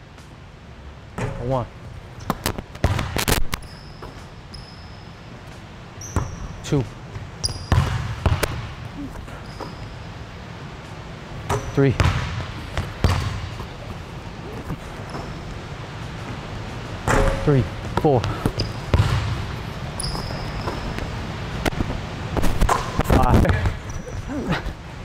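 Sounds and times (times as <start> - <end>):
sneakers squeaking on hardwood: 2.2 - 6.6, 7.2 - 10.3, 11.4 - 16.4, 17.1 - 23.0
basketball bouncing on hardwood: 7.4 - 8.7, 11.5 - 13.7, 17.1 - 19.4.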